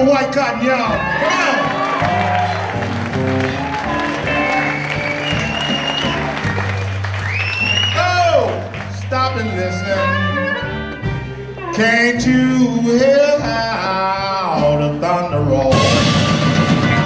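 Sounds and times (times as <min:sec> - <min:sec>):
live blues band playing: 0:00.0 - 0:17.0
harmonica bending notes: 0:02.4 - 0:17.0.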